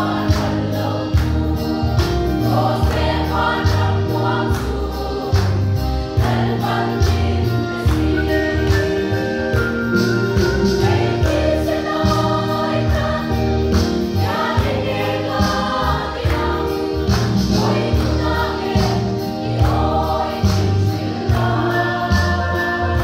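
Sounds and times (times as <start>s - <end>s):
women's choir singing a hymn: 0.0s - 23.0s.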